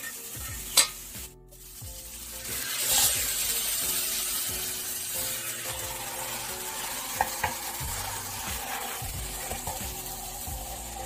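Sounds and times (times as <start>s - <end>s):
chicken sizzling in a frying pan: 0.0s - 11.0s.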